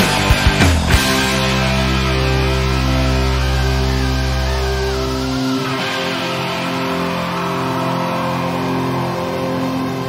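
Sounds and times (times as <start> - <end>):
bass guitar: 0.0 - 10.0
distorted electric guitars: 0.0 - 10.0.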